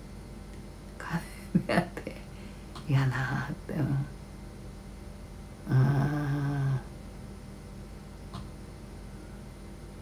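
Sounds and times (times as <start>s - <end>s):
woman humming: 5.6s - 6.9s.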